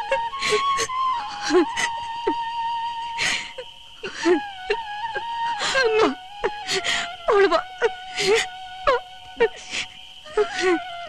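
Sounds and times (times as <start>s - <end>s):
person sobbing and wailing: 0.0s - 2.5s, 3.2s - 11.0s
soft background music: 0.0s - 11.0s.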